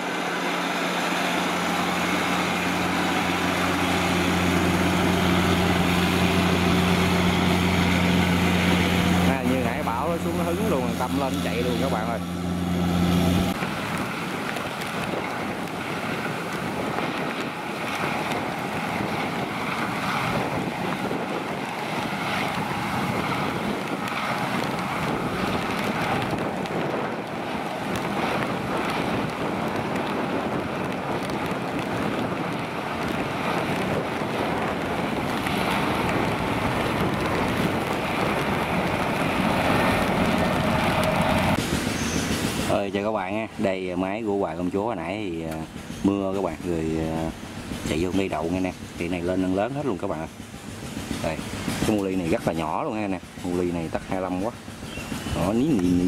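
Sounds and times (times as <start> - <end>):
combine harvester running: 0.0 - 56.0
wind on microphone: 0.0 - 56.0.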